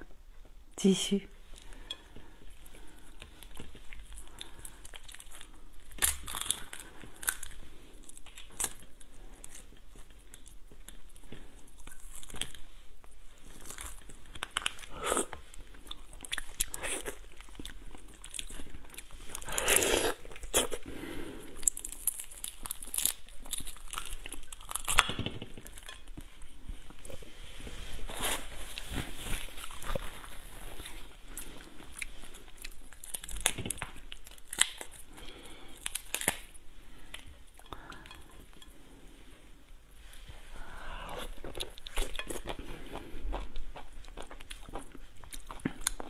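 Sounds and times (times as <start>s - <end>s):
crab shell cracking: 33.0s - 35.0s.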